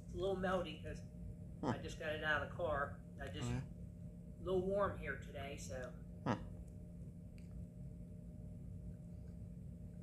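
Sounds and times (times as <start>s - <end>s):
steady low hum: 0.0s - 10.0s
man humming mm of enjoyment: 3.4s - 3.7s.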